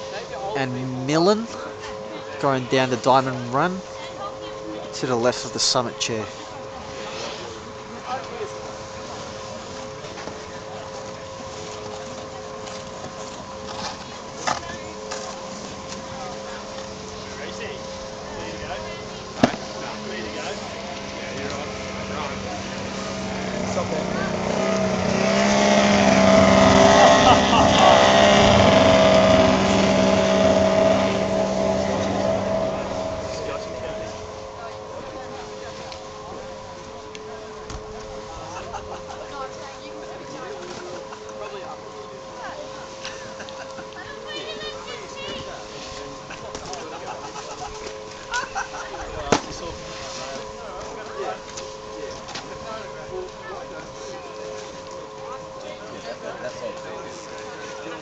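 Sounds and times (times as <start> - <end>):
motor humming passing by: 0.0 - 43.2
faint distant voices: 0.0 - 58.0.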